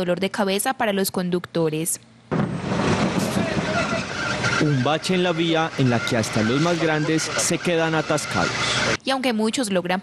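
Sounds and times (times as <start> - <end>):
road noise: 2.4 - 9.0
truck engine running: 2.4 - 9.0
faint voices: 3.2 - 9.0.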